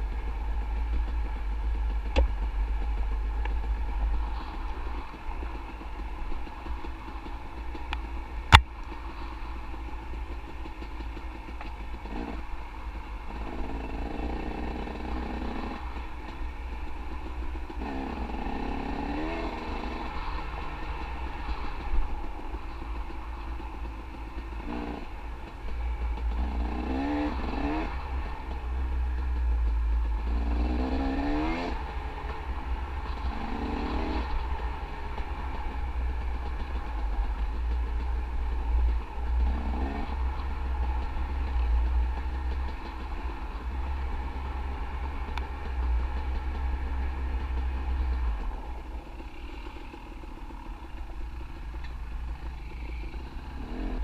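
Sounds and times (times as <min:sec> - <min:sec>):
dirt bike engine revving: 0:12.0 - 0:12.5, 0:17.7 - 0:21.9, 0:26.3 - 0:28.5, 0:30.2 - 0:32.0, 0:39.4 - 0:40.6, 0:52.4 - 0:54.0.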